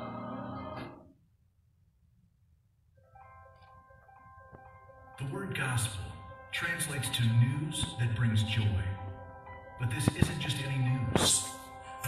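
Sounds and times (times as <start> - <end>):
soft music with sustained tones: 0.0 - 1.0, 3.0 - 12.0.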